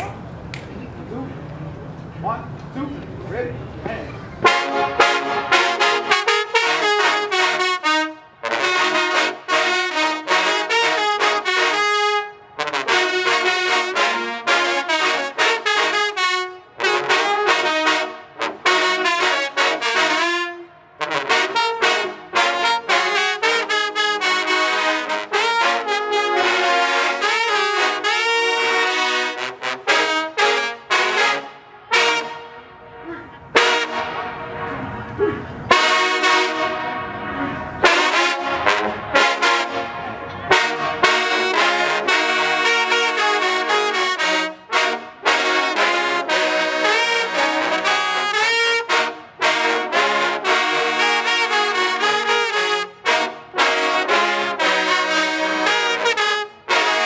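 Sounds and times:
trombone section playing: 4.4s - 57.0s.

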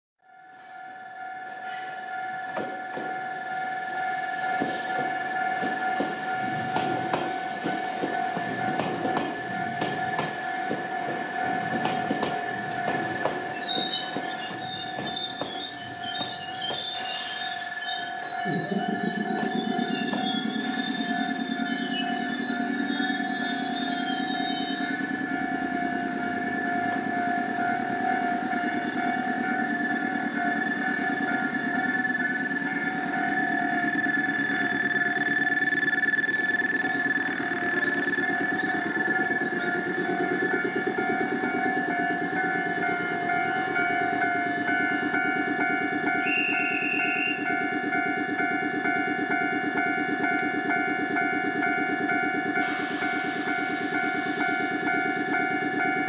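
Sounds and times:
level crossing warning alarm: 0.2s - 56.0s
low running hum of train: 0.2s - 56.0s
wheels and brakes squealing: 1.6s - 2.1s, 12.4s - 48.5s
train wheels clacking over rail joints: 4.5s - 17.0s.

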